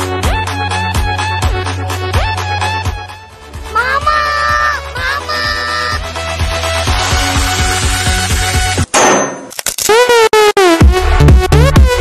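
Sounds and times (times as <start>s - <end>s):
music with a steady beat: 0.0s - 3.7s, 10.4s - 12.0s
loud metallic clang: 8.8s - 9.6s.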